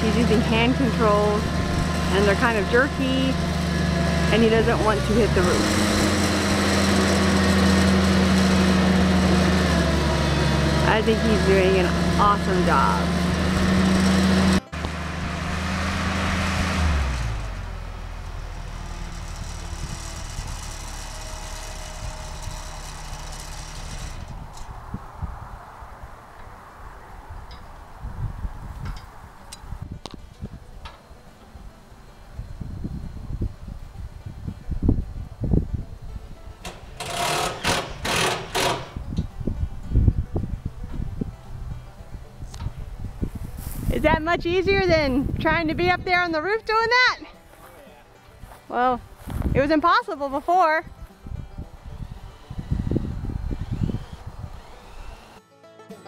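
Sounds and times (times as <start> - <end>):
wind buffeting microphone: 0.0 - 9.9, 18.8 - 21.0, 23.6 - 30.8, 32.3 - 36.6, 38.9 - 47.1, 49.0 - 50.0, 50.6 - 55.3
lift engine running: 0.0 - 25.0, 30.7 - 47.5, 48.2 - 55.4.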